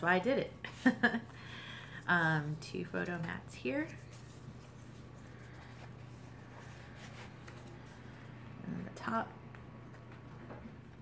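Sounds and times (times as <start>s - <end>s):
steady low hum: 0.0s - 11.0s
paper pages rustling and flipping: 2.8s - 8.4s, 9.5s - 11.0s.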